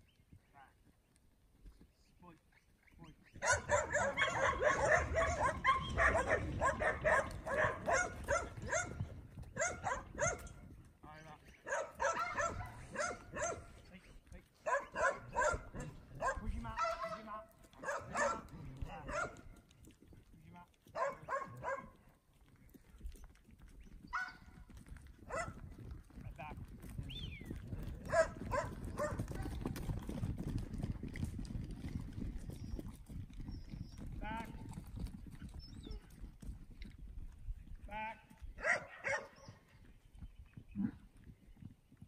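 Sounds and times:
dog barking rapidly: 3.4 - 9.0, 9.6 - 10.5, 11.7 - 13.7, 14.6 - 17.2, 17.8 - 19.4, 21.0 - 21.9, 24.1 - 24.4, 25.3 - 25.6, 28.1 - 29.5, 38.6 - 39.5.

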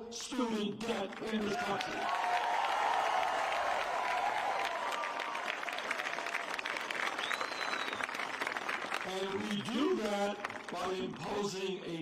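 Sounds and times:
crowd applauding and cheering: 0.8 - 11.7.

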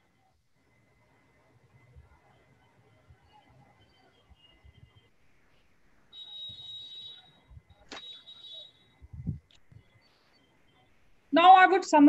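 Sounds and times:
sharp click: 7.9 - 8.1.

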